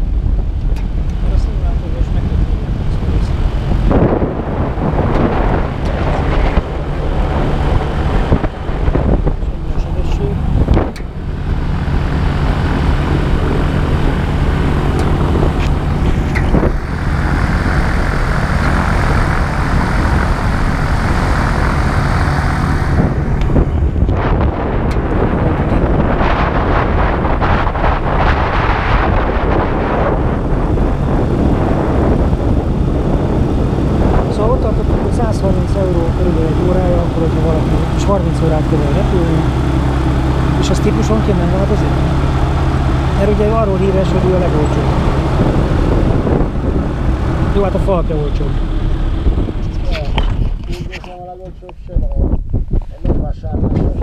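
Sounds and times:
gyroplane engine and propeller: 0:00.0 - 0:54.0.

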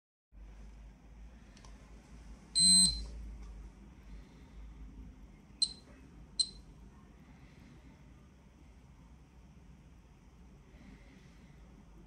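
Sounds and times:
short high chirps: 0:02.6 - 0:03.0, 0:06.4 - 0:06.6
dosimeter beep: 0:02.6 - 0:03.1, 0:05.6 - 0:05.8, 0:06.4 - 0:06.6.

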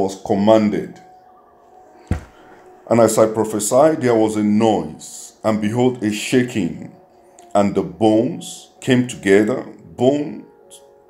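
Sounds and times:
man reading aloud: 0:00.0 - 0:01.0, 0:02.9 - 0:10.9
short thump: 0:02.1 - 0:02.4.

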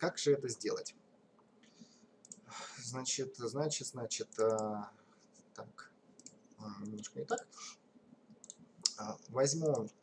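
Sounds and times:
man speaking: 0:00.0 - 0:01.0, 0:02.6 - 0:05.0, 0:05.6 - 0:06.0, 0:06.6 - 0:07.6, 0:08.9 - 0:10.0
computer mouse clicks: 0:01.4 - 0:02.5, 0:04.2 - 0:04.7, 0:06.2 - 0:07.5, 0:08.3 - 0:10.0.

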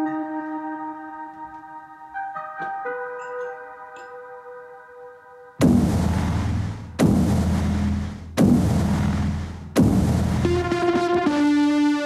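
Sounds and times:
electronic impact hits: 0:05.6 - 0:10.9
held synthesizer chord: 0:09.8 - 0:12.0.

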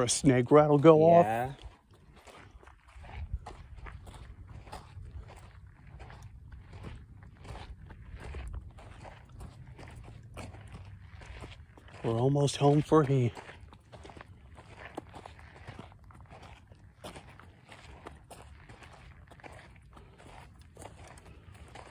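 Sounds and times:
footsteps crunching on gravel: 0:00.0 - 0:21.9.

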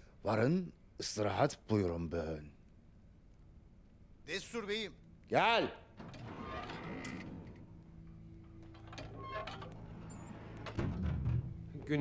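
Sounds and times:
door thud: 0:10.5 - 0:11.7.

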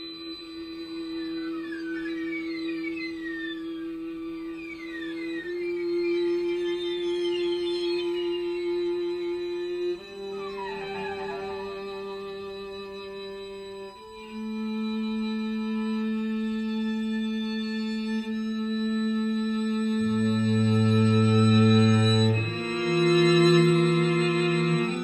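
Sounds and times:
falling harmonic string glissandi: 0:00.0 - 0:14.6
string quartet sustained chords: 0:00.0 - 0:25.0.

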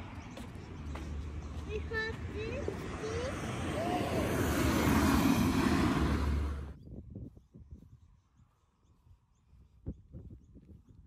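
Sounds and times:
vehicle driving past: 0:00.1 - 0:06.8.

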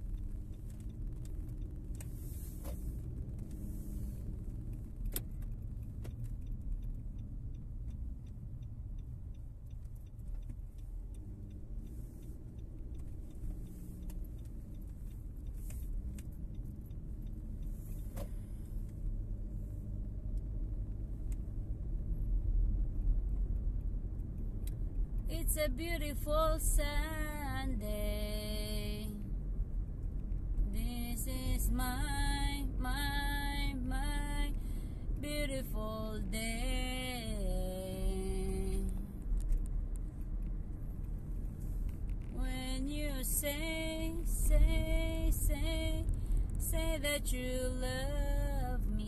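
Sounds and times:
car engine and road rumble: 0:00.0 - 0:49.0.

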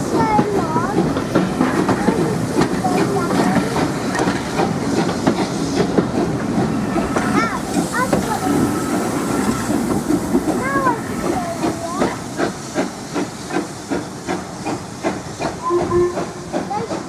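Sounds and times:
hissing steam: 0:00.0 - 0:17.0
steam locomotive exhaust beats: 0:00.0 - 0:17.0.

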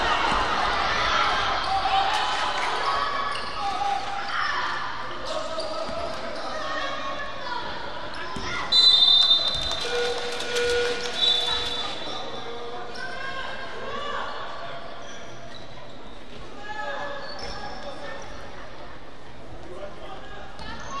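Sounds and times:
sneakers squeaking: 0:02.8 - 0:07.0, 0:08.1 - 0:13.3, 0:14.7 - 0:18.7, 0:20.5 - 0:21.0
referee's whistle: 0:08.7 - 0:12.4.

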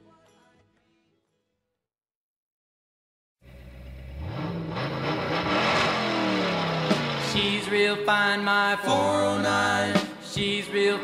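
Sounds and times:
car engine revving and accelerating: 0:03.5 - 0:07.8.

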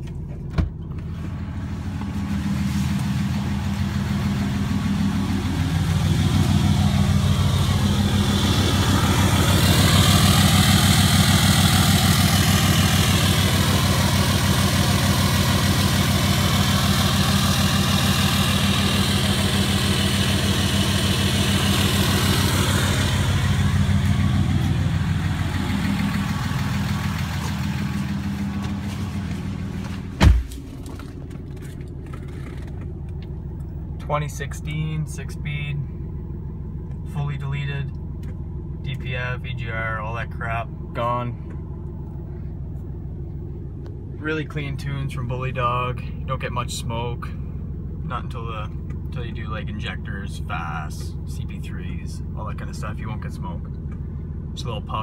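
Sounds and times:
diesel truck engine idling: 0:00.1 - 0:55.0
thump: 0:29.9 - 0:30.7.

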